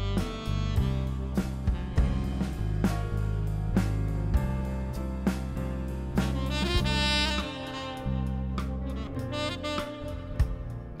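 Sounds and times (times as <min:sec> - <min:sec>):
drum kit hits: 0:00.0 - 0:09.0
sustained bass notes: 0:00.0 - 0:11.0.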